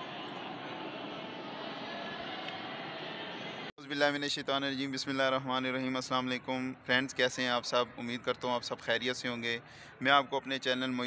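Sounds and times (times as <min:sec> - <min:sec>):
echoing hall hiss and hum: 0:00.0 - 0:05.4.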